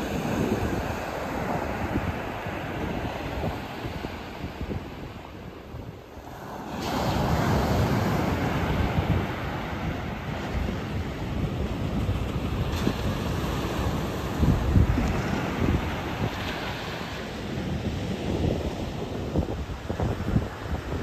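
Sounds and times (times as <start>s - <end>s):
surf breaking on beach: 0.0s - 21.0s
wind buffeting microphone: 0.0s - 21.0s.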